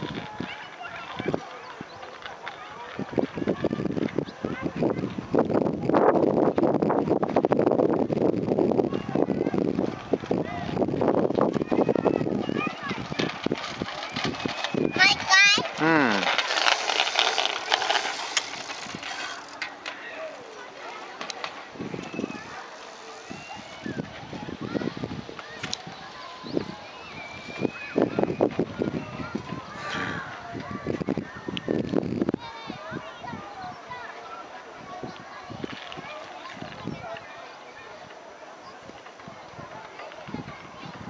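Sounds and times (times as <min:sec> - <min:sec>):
bicycle rattling over planks: 0:00.0 - 0:30.0
indistinct voices: 0:08.7 - 0:31.6
loud voice call: 0:15.8 - 0:16.3.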